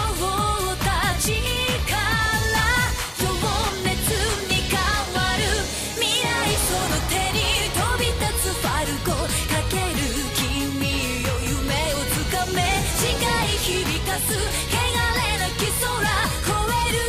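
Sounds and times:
drums and band: 0:00.0 - 0:17.0
person singing pop song: 0:00.0 - 0:17.0.

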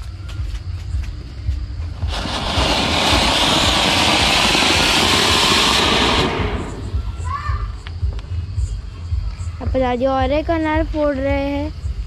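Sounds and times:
firecracker fountain hissing: 0:01.9 - 0:07.4.

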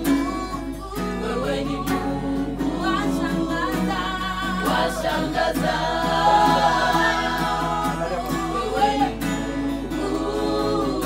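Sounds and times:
women singing in harmony: 0:00.0 - 0:11.0
hand claps: 0:08.1 - 0:08.6.

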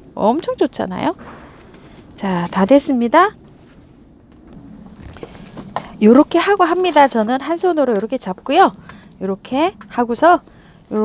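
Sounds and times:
faint rustling: 0:01.2 - 0:11.0.

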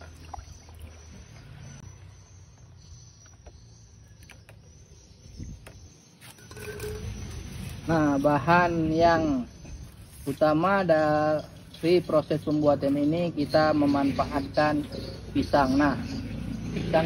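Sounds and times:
stick stirring liquid in tub: 0:00.0 - 0:01.6.

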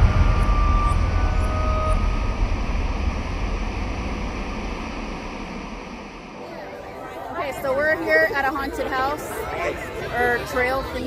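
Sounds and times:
steady rumbling hiss: 0:00.0 - 0:10.7.

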